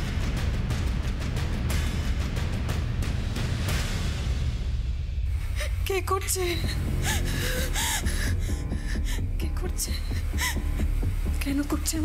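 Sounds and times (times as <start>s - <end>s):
dramatic background music: 0.0s - 12.0s
woman gasping: 5.4s - 10.9s.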